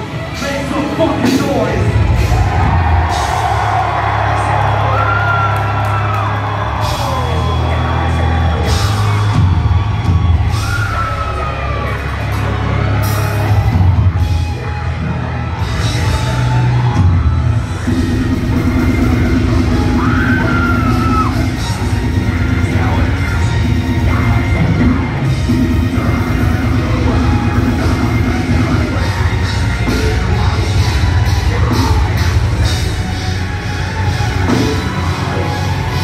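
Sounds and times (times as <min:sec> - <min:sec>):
live metal band playing: 0:00.0 - 0:36.0.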